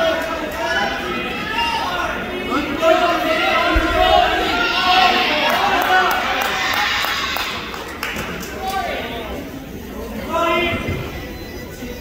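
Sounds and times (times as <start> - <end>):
spectators shouting: 0.0 - 7.8.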